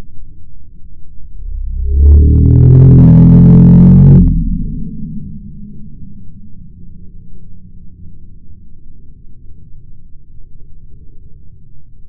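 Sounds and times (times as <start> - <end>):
slowed-down deep groan: 1.3 - 9.4.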